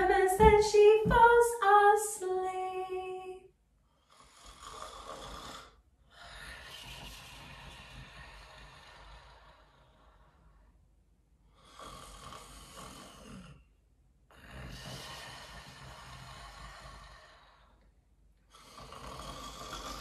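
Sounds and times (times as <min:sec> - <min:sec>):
woman mock snoring: 0:18.5 - 0:20.0.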